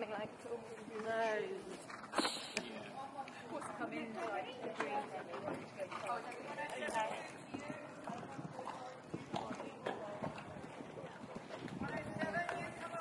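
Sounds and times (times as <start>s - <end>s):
people talking: 0.0s - 13.0s
horse hoofbeats on sand: 3.5s - 13.0s.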